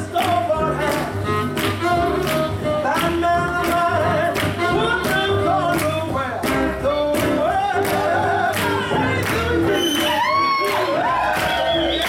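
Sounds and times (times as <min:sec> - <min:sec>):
swing jazz music: 0:00.0 - 0:12.0.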